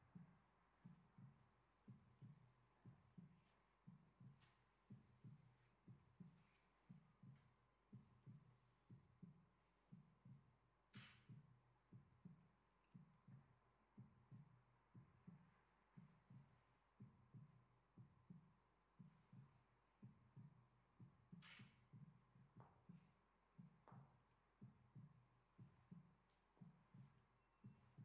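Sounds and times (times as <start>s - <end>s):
faint low heartbeat-like thumping: 0.0s - 28.0s.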